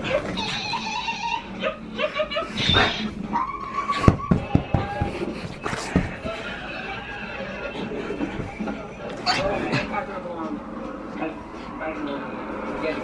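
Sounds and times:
dog whining: 0:00.0 - 0:05.0.

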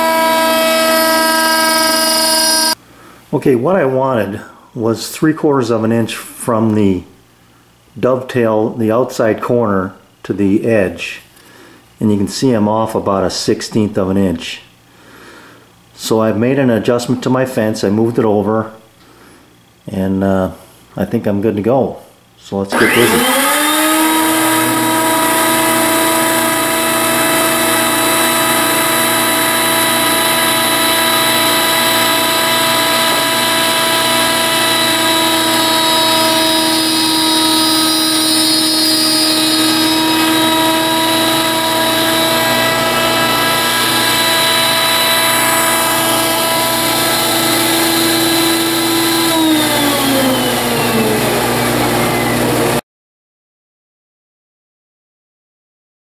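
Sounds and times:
router whining: 0:00.0 - 0:02.8, 0:22.7 - 0:52.8.

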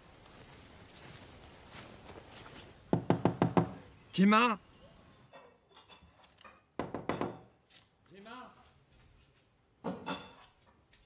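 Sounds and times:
knocking on wooden door: 0:02.9 - 0:03.8, 0:06.8 - 0:07.4.

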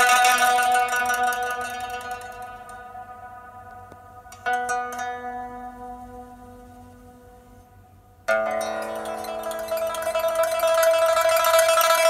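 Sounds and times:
plucked-string music with chiming notes: 0:00.0 - 0:12.0.

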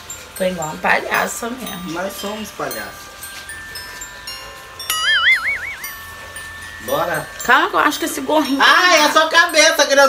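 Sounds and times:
soft ringing chimes: 0:00.0 - 0:10.0
warbling whistle-like tone: 0:04.9 - 0:06.0.

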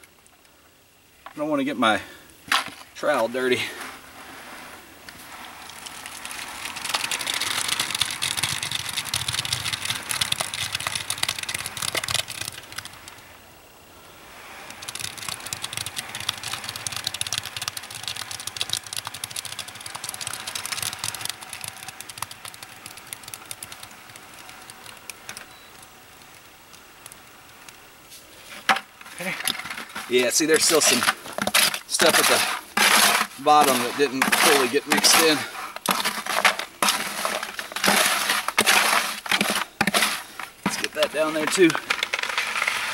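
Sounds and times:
wet concrete pouring from bucket: 0:04.4 - 0:12.9, 0:14.7 - 0:25.3, 0:29.2 - 0:42.9.

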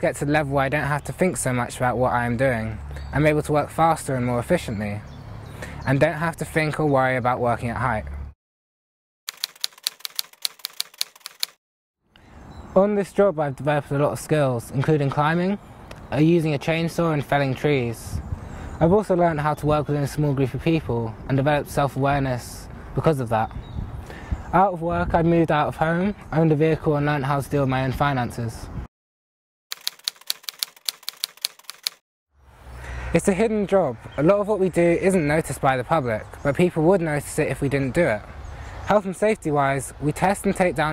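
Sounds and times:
typewriter keys clacking: 0:09.3 - 0:11.6, 0:29.7 - 0:32.0.

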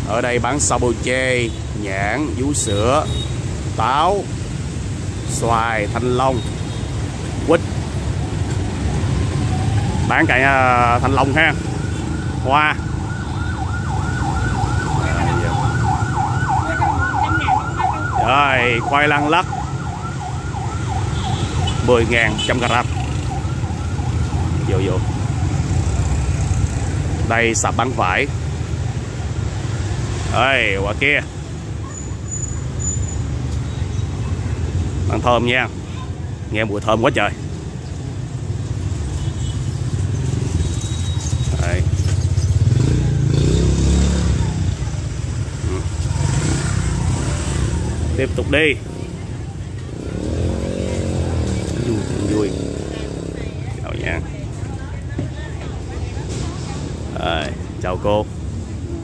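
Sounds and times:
motorbike traffic rumble: 0:00.0 - 0:59.0
electronic siren yelping: 0:08.8 - 0:26.1.

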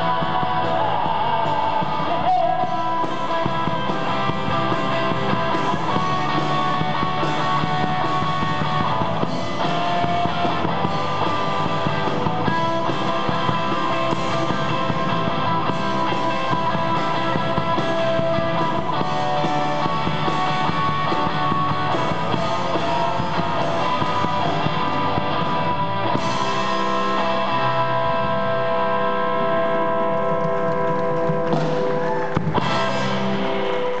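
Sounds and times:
live rock band playing: 0:00.0 - 0:34.0
sustained electric guitar notes: 0:00.0 - 0:34.0.

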